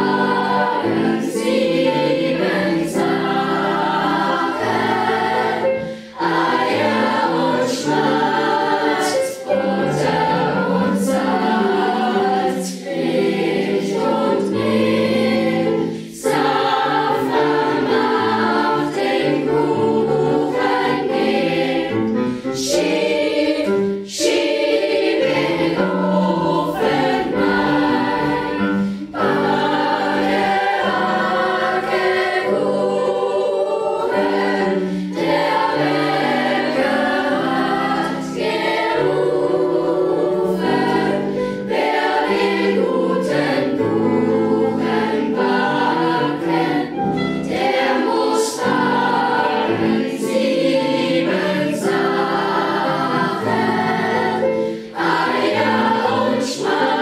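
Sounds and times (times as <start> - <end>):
children's choir singing: 0.0 - 57.0
singers breathing: 5.8 - 6.2, 15.7 - 16.2, 28.6 - 29.2, 34.7 - 35.2, 54.5 - 55.0.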